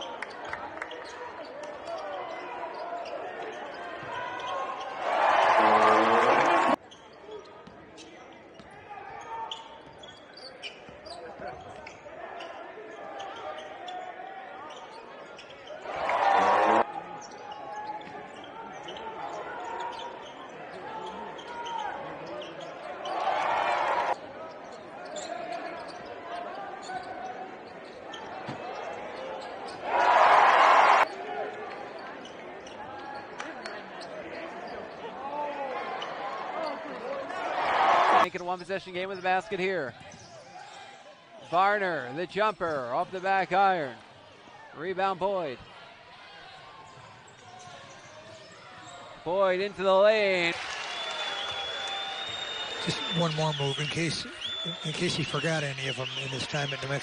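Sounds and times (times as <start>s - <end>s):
crowd noise bursts: 15.8s - 16.9s.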